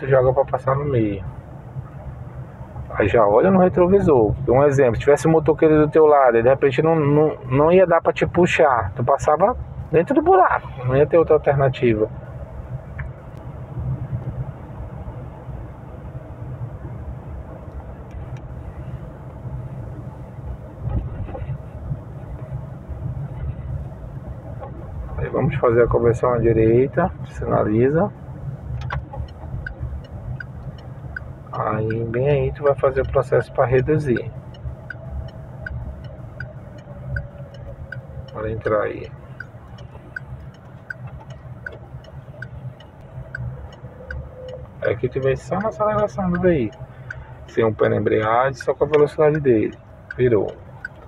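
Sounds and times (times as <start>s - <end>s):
car engine and tyres rumbling: 0.0s - 51.0s
turn signal ticking: 1.2s - 51.0s.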